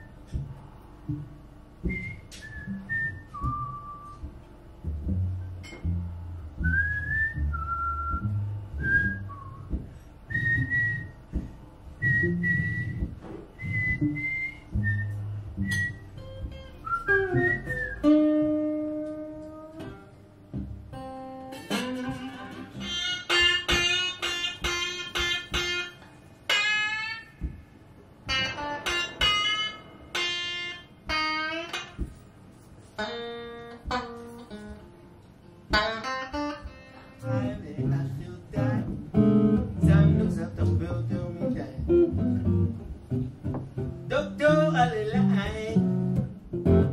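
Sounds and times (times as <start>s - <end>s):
man whistling bluesy melody: 0.0s - 0.4s, 1.8s - 4.4s, 6.5s - 11.4s, 12.0s - 19.9s, 38.6s - 42.8s
plucked guitar bass line: 0.0s - 32.2s, 33.0s - 46.9s.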